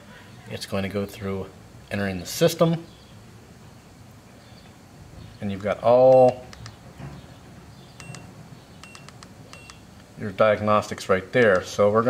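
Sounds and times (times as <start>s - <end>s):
code reader short high beep: 8.0s - 9.8s.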